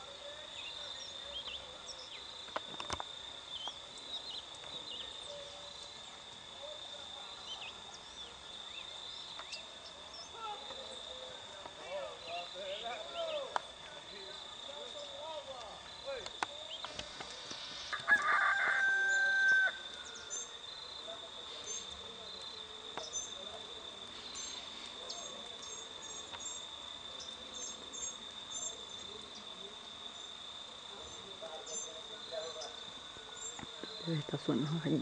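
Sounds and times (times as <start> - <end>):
high insect drone: 0.0 - 35.0
rooster crowing: 17.9 - 20.5.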